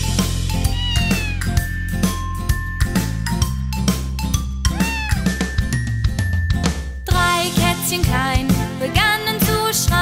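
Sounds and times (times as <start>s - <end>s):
children's song backing track: 0.0s - 10.0s
cartoon kitten meowing: 0.6s - 1.7s, 4.7s - 5.4s.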